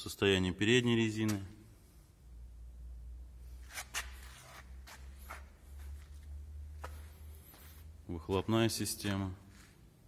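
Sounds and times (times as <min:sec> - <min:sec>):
low steady hum: 0:00.0 - 0:10.0
footstep scuffs and rustles: 0:03.6 - 0:10.0.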